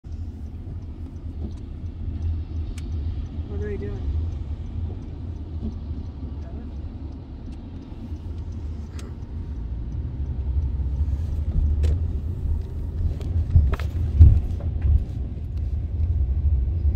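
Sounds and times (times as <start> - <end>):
sharp ticks: 0.1 - 16.6
car cabin rumble: 0.1 - 16.9.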